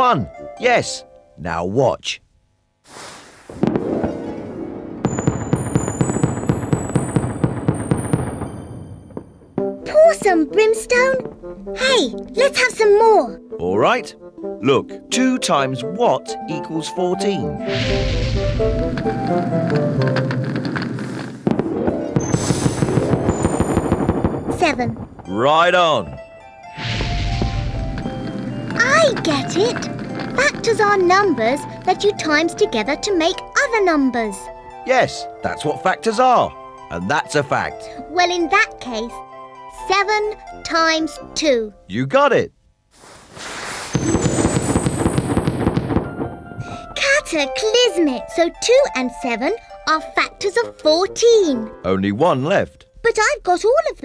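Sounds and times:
background music: 0.0s - 2.2s, 3.6s - 42.6s, 44.0s - 54.0s
cartoon firework crackling pops: 2.8s - 10.3s, 17.6s - 25.4s, 26.8s - 32.3s, 42.9s - 47.0s
high sparkling tones: 3.6s - 9.4s, 21.9s - 25.4s, 43.9s - 47.0s
rushing whoosh: 17.7s - 19.6s.

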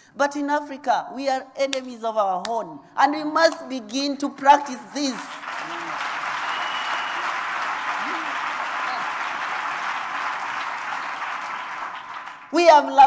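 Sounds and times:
audience applauding: 5.2s - 12.9s.

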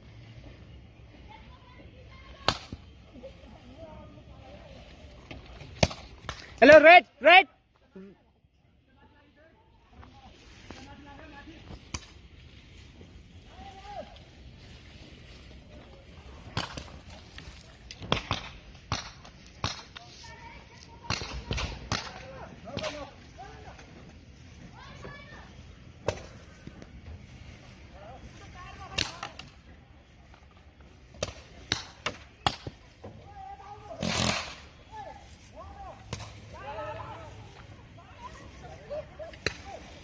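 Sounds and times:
distant players shouting: 6.6s - 7.6s
paintball markers firing: 34.0s - 34.7s.

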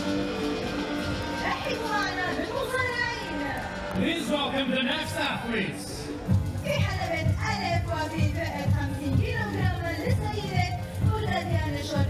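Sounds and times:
arena music: 0.0s - 12.0s
voices calling out and cheering: 0.0s - 12.0s.

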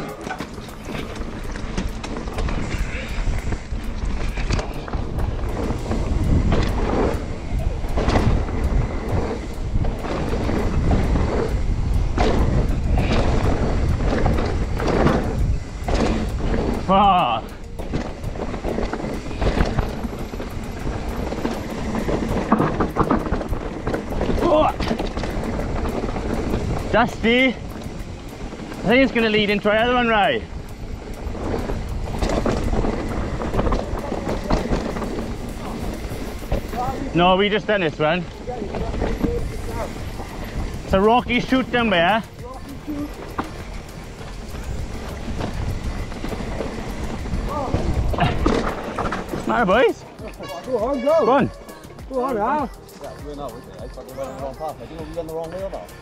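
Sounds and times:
wind on microphone: 0.0s - 50.4s
bike tyres rumbling on dirt: 0.0s - 52.2s
bike chain and frame clattering: 0.0s - 56.0s.

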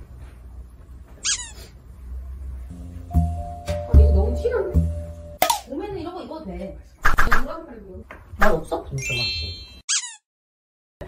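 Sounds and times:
short high-pitched squeak: 1.2s - 1.7s, 9.0s - 10.2s.

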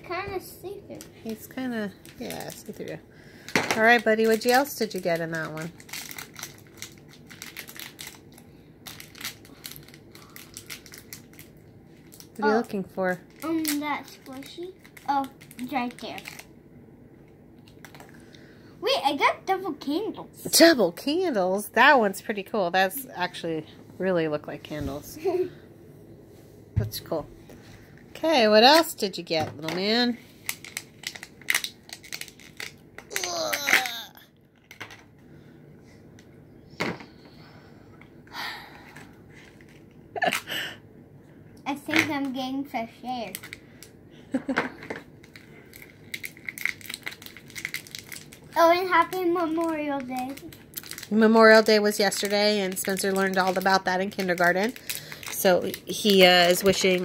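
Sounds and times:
plastic wrapper crinkling: 0.9s - 16.6s, 17.6s - 18.3s, 29.9s - 35.1s, 43.2s - 43.9s, 45.1s - 57.0s.

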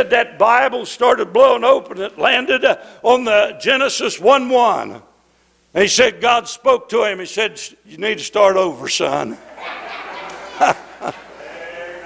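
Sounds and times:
man laughing: 9.3s - 11.6s.

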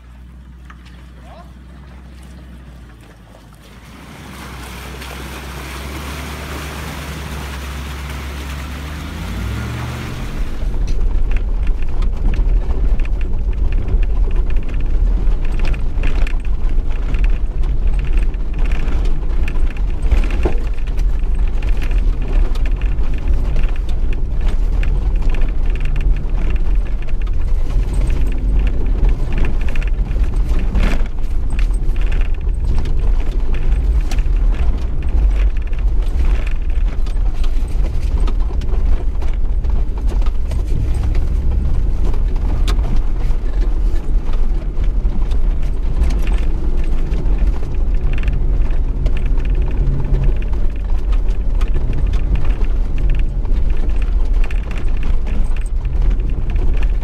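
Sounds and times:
vehicle engine revving: 3.8s - 11.2s, 27.4s - 54.0s
wind buffeting on camera: 9.3s - 57.0s.

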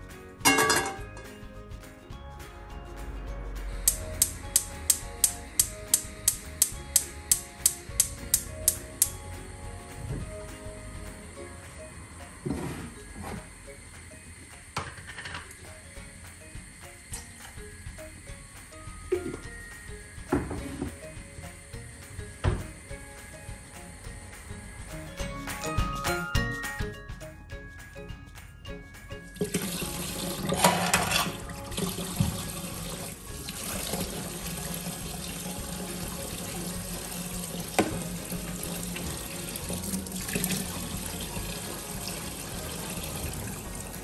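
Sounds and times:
background music: 0.0s - 44.0s
gas hob igniter clicking: 3.9s - 9.2s.

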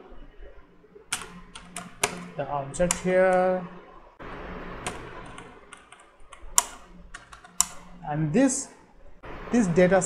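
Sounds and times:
keyboard key clicks: 4.9s - 7.8s.

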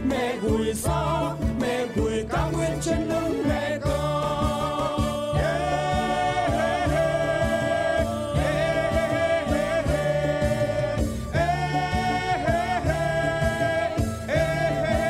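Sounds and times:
group of voices singing: 0.0s - 15.0s
steady drum beat: 0.0s - 15.0s.

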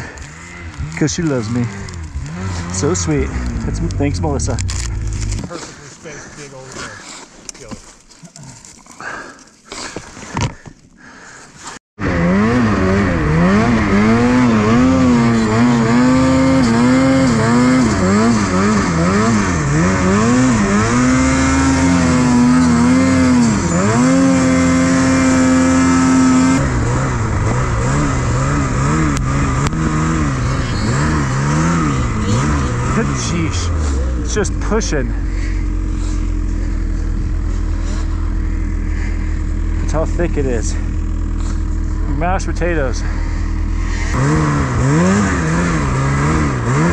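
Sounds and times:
snowmobile engine revving: 0.0s - 7.0s, 12.0s - 46.9s.

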